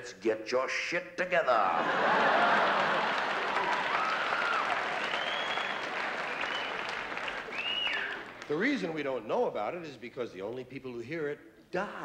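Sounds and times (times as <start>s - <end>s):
laughter: 1.8s - 3.6s
audience applauding: 2.0s - 8.8s.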